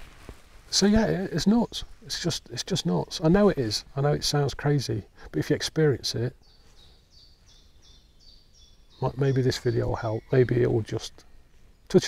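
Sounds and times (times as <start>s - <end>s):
songbird singing faintly: 0.0s - 12.0s.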